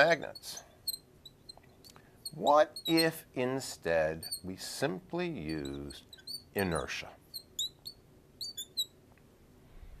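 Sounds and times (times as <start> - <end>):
marker squeaking on glass board: 0.0 - 3.3, 4.0 - 9.0.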